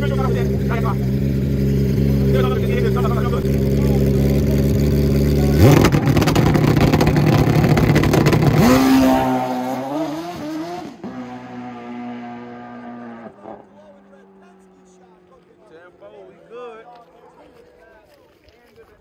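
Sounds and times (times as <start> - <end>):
motorcycle engine revving: 0.0 - 15.3.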